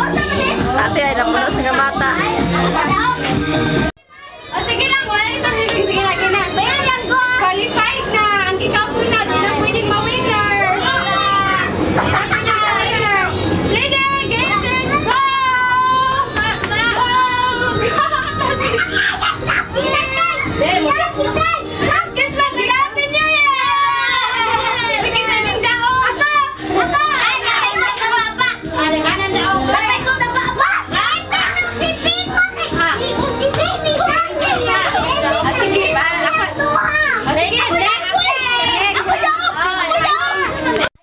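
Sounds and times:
children talking and calling out: 0:00.0 - 0:41.0.

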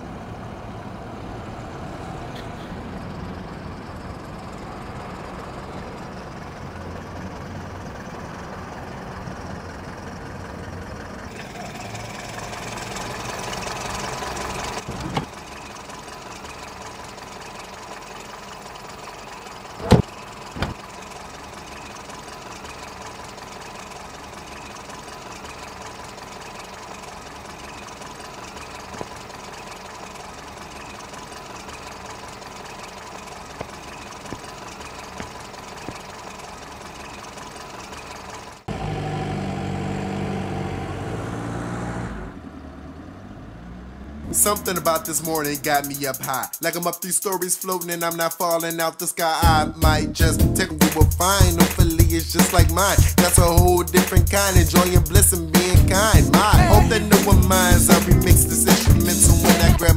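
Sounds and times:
car engine idling: 0:00.0 - 0:40.3, 0:42.2 - 0:59.9.

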